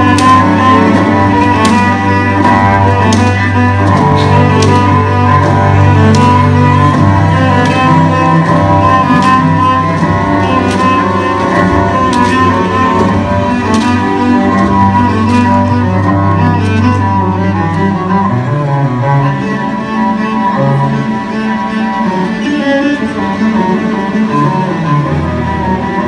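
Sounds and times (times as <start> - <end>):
sharp knocks: 0.0 - 16.8
cellos and double basses bowing: 0.0 - 26.0.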